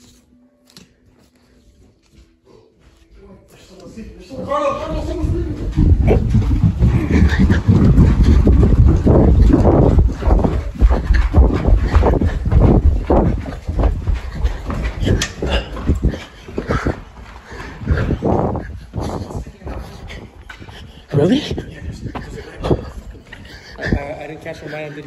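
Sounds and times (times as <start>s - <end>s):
running footsteps: 1.1s - 25.0s
heavy panting: 4.7s - 25.0s.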